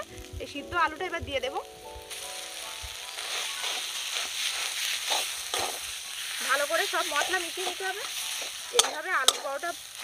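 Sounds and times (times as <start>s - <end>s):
background music: 0.0s - 10.0s
potato sizzling in a pan: 0.0s - 10.0s.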